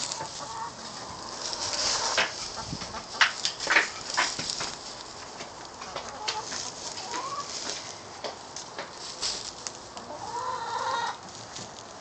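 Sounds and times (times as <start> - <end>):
chickens clucking: 0.0 - 11.7.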